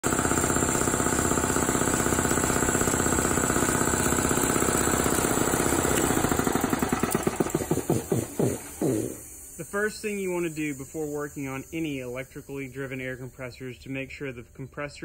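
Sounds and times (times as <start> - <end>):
air compressor pump knocking: 0.0 - 9.3.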